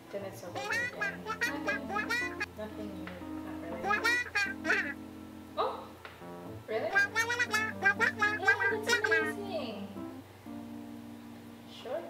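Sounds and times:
soft background music: 0.0 - 12.0
jabbering voice on phone: 0.6 - 2.5, 3.7 - 5.0, 6.9 - 9.6.

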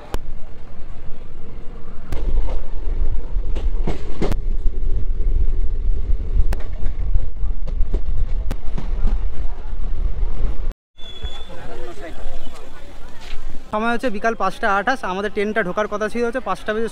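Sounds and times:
train rumble: 0.0 - 10.7
wind buffeting microphone: 0.0 - 10.7.

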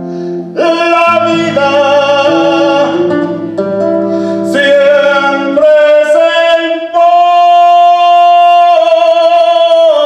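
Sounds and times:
man singing long held note: 0.5 - 3.6, 4.2 - 10.0.

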